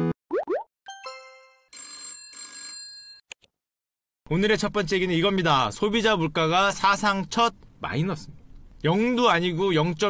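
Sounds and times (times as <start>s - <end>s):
telephone bell ringing: 0.9s - 3.2s.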